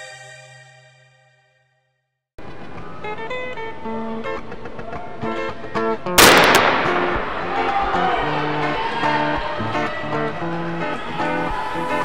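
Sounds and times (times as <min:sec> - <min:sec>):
plucked guitar music: 0:03.0 - 0:11.0
loud ringing crash: 0:06.2 - 0:08.4.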